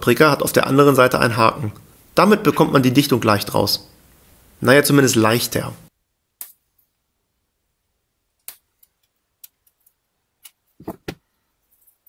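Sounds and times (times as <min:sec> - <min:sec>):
phone being handled knock: 0:10.8 - 0:11.2.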